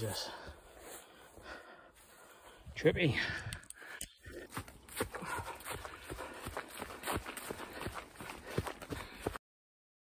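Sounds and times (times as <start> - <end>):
running footsteps on dirt trail: 0.0 - 9.4.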